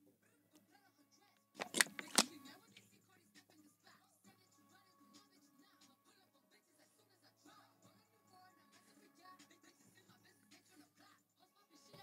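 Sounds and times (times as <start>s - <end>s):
drink bottle crackling: 1.6s - 2.4s.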